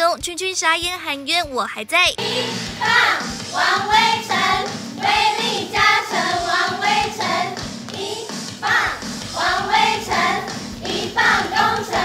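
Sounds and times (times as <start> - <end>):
backing track with steady beat: 0.0 - 12.0.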